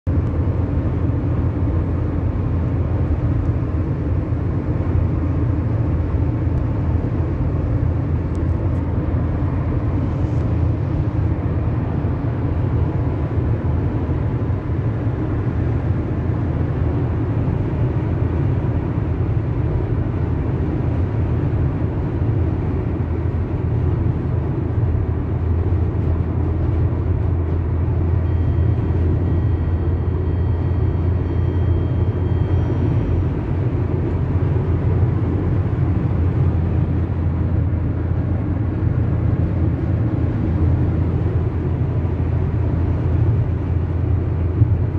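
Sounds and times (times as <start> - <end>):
car cruising at highway speed: 0.0 - 44.9.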